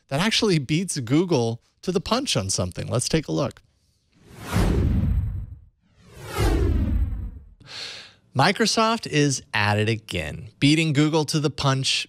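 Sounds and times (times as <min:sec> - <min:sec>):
whoosh sound effects: 0:04.2 - 0:07.6.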